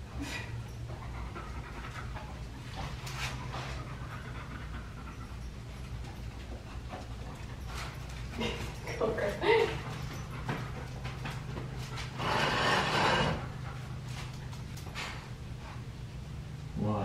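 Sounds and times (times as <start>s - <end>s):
low steady hum: 0.0s - 17.0s
dog panting: 0.6s - 15.9s.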